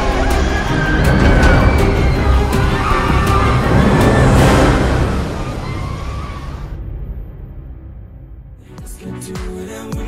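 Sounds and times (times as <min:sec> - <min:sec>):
roller coaster rumbling on track: 0:00.0 - 0:07.6
whoosh: 0:00.0 - 0:08.4
dramatic music: 0:00.0 - 0:10.0.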